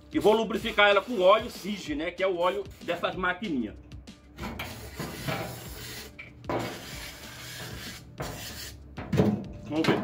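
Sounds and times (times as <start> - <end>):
rasping rubbing noise: 4.6 - 8.9.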